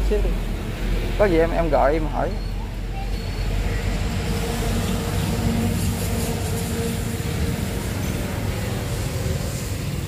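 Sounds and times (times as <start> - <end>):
motor vehicle engine rumble: 0.0 - 10.0.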